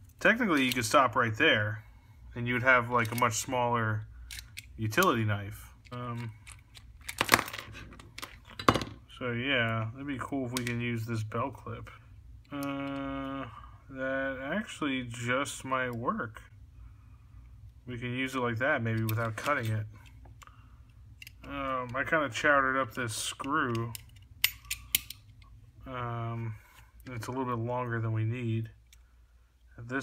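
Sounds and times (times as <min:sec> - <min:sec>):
man saying umm: 0:12.5 - 0:14.4
folding knife metal clicks: 0:23.7 - 0:25.3.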